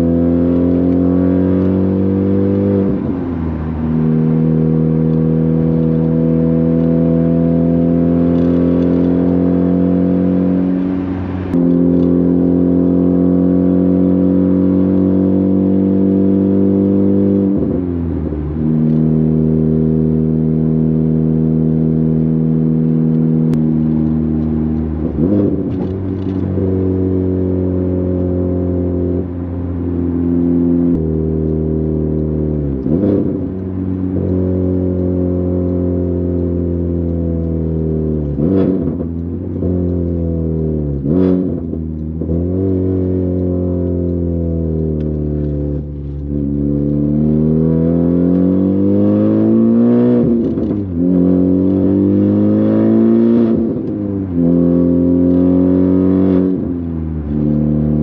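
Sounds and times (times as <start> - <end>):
car engine drone: 0.0 - 58.0.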